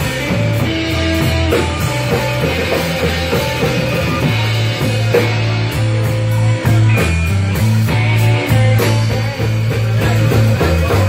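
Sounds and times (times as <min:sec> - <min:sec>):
bass notes: 0:00.0 - 0:11.0
drum kit beat: 0:00.0 - 0:11.0
electric guitar: 0:00.0 - 0:11.0.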